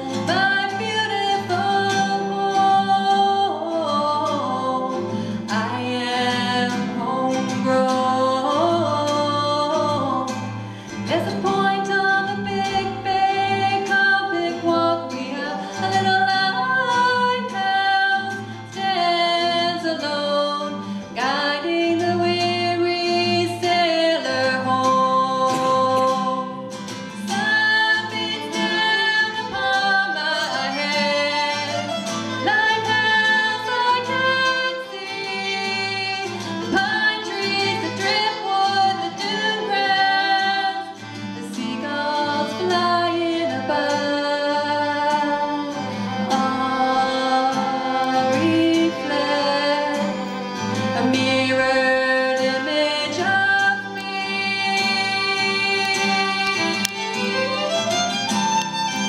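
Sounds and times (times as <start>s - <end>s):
woman singing: 0.0s - 58.2s
acoustic guitar: 0.0s - 59.0s
violin playing: 22.0s - 59.0s.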